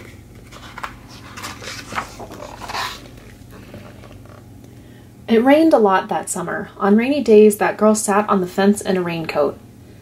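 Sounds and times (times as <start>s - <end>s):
page turning click: 0.0s - 3.0s
paper page rustling swish: 0.0s - 3.4s.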